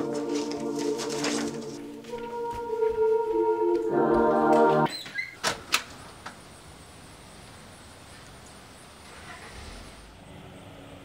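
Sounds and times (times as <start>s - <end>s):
soft background music: 0.0s - 4.9s.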